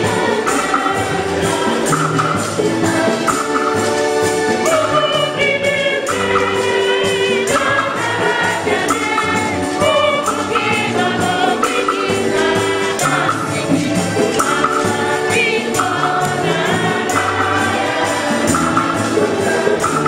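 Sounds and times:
choir singing gospel hymn: 0.0s - 20.0s
jingling accompaniment: 0.0s - 20.0s
percussion beat: 0.0s - 20.0s.

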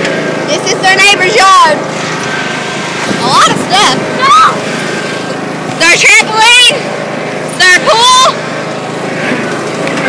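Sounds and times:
lawnmower engine running: 0.0s - 10.0s
high-pitched vocal squeals: 3.3s - 4.6s.

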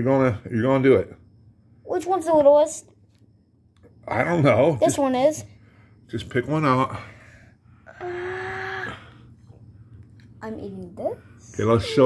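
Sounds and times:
low steady hum: 0.0s - 12.0s
boy whining: 7.9s - 9.3s, 11.6s - 12.0s.

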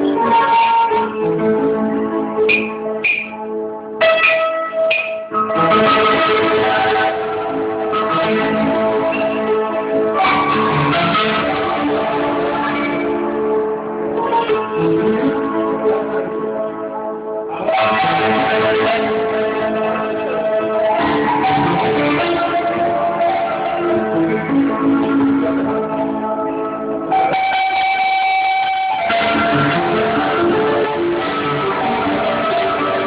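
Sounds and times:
plucked string instrument: 0.0s - 16.8s, 17.5s - 33.0s
guitar music: 0.0s - 33.0s.

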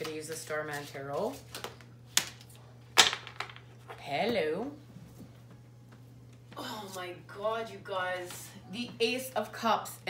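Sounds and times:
cards being shuffled: 0.0s - 2.6s.

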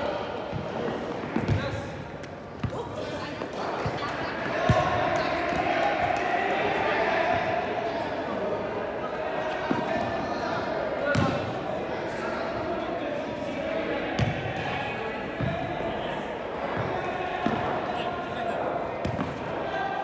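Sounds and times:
players shouting: 0.0s - 20.0s.

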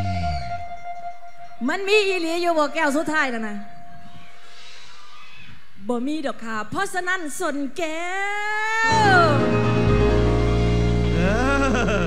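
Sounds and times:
live band chord: 8.9s - 12.0s.

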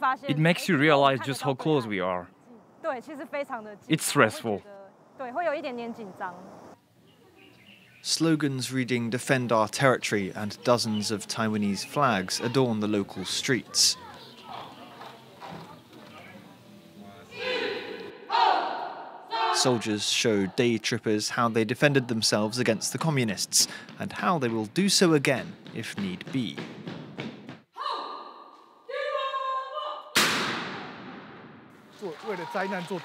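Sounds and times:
distant voices: 1.8s - 18.2s, 19.6s - 26.6s
footsteps on hard pavement: 10.4s - 16.3s, 23.2s - 27.7s.

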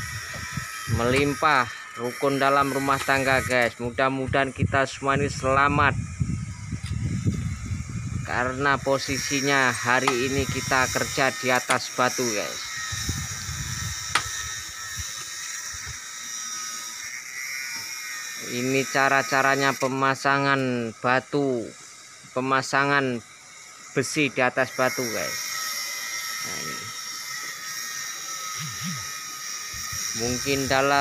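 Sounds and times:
high-pitched drone: 0.0s - 31.0s
outdoor background hiss: 0.0s - 31.0s
steady high-pitched whine: 0.0s - 31.0s.

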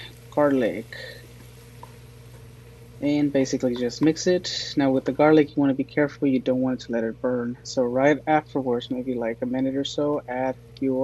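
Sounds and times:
food hissing in pot: 0.0s - 5.4s
low steady hum: 0.0s - 11.0s.

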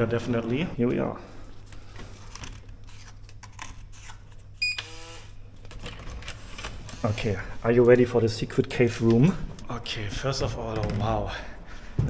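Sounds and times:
keycard lock beeps: 4.6s - 5.0s.

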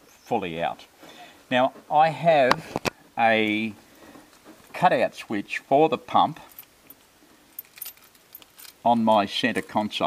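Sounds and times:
car keys jingling: 6.4s - 8.9s.

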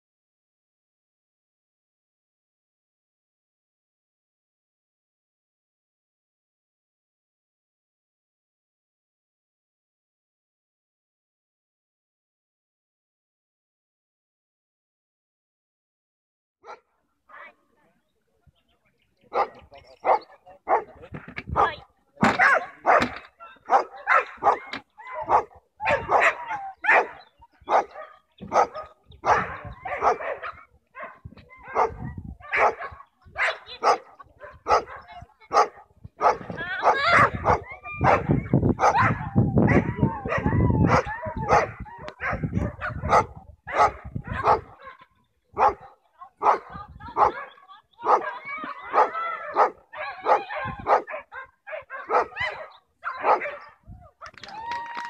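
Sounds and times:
dog barking: 16.6s - 17.5s, 19.3s - 45.0s, 45.6s - 53.8s.

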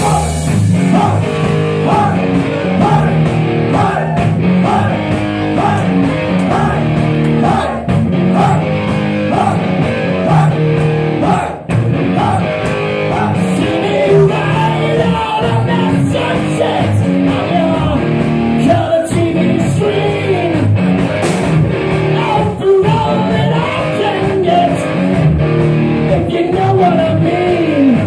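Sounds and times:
man singing: 0.0s - 5.0s, 5.6s - 8.7s, 9.3s - 10.6s, 11.2s - 20.8s, 22.1s - 25.0s, 26.0s - 28.0s
drums: 0.0s - 28.0s
electric guitar chords: 0.0s - 28.0s.

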